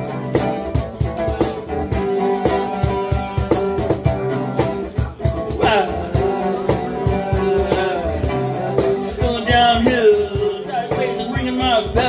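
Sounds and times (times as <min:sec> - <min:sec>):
acoustic guitar strummed: 0:00.0 - 0:12.0
cajon beat: 0:00.0 - 0:12.0.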